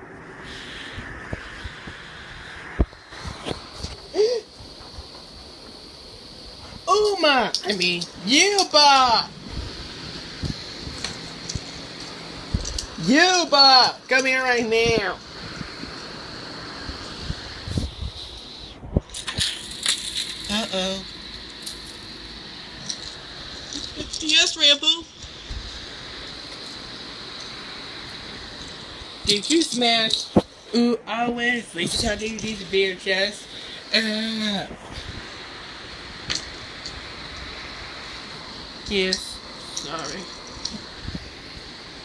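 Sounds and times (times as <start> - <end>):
room noise hiss: 0.0 - 42.0
crackling rustles: 0.5 - 30.8, 31.8 - 42.0.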